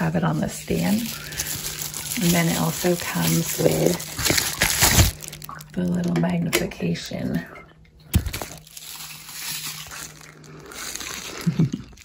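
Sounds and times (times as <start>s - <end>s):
bubble wrap crinkling: 0.0s - 6.0s, 8.1s - 12.0s.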